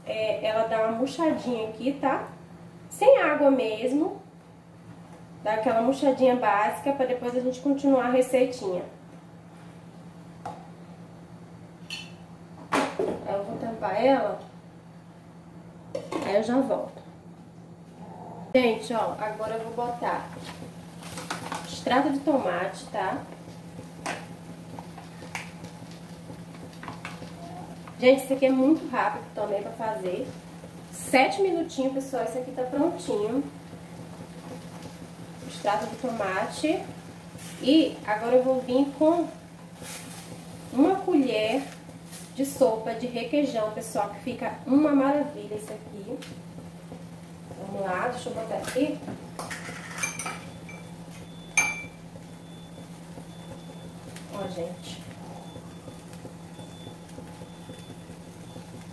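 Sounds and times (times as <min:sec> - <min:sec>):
steady low hum: 0:00.0 - 0:58.9
metal utensils clinking: 0:49.5 - 0:50.8.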